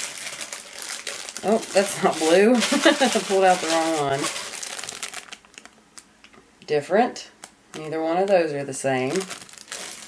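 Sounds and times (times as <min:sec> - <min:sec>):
plastic bags crinkling: 0:00.0 - 0:06.1, 0:09.0 - 0:10.0.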